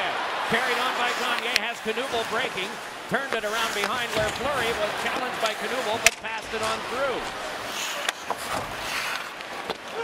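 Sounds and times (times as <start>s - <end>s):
hockey stick hitting puck: 0.7s - 7.1s.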